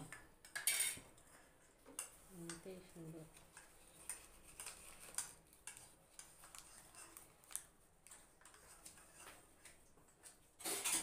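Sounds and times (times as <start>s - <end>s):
spoon clinking on steel dishes: 0.4s - 1.0s.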